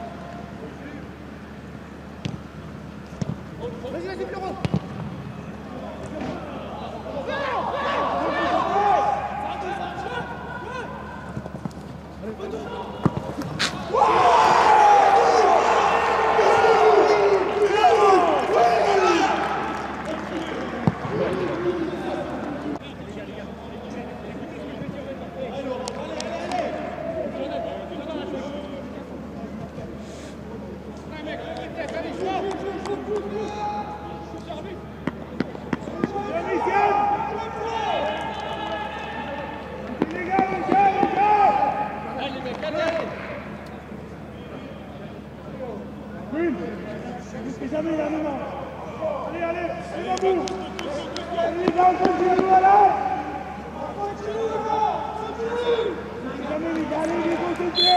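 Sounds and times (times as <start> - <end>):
players shouting calls: 2.0 - 22.9, 31.8 - 43.6, 47.6 - 57.9.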